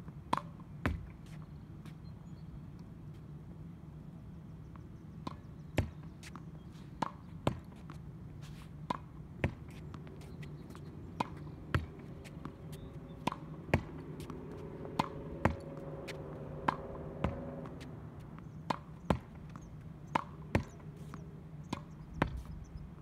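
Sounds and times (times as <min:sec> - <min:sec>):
tennis ball knocking against wall: 0:00.3 - 0:01.2, 0:05.2 - 0:06.4, 0:07.0 - 0:08.0, 0:08.8 - 0:22.6.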